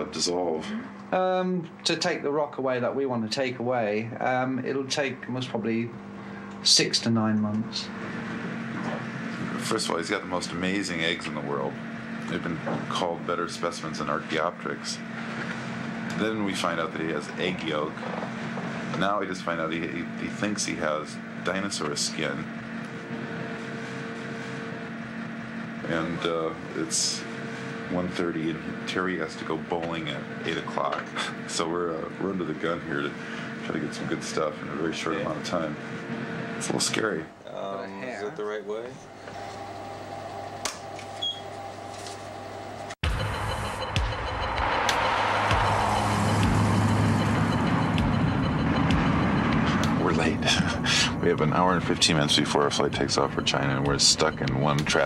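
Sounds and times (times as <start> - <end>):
man speaking: 0.0 - 6.0, 9.5 - 15.0, 16.1 - 18.0, 19.0 - 22.5, 25.8 - 27.2, 27.9 - 35.8, 36.6 - 39.0, 49.6 - 55.0
background hum and hiss: 0.0 - 43.0, 48.8 - 55.0
car road and engine noise: 43.2 - 51.3
faint held tones: 43.6 - 55.0.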